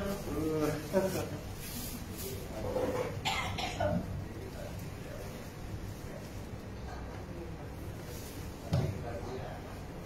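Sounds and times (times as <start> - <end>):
person coughing: 3.2 - 4.0.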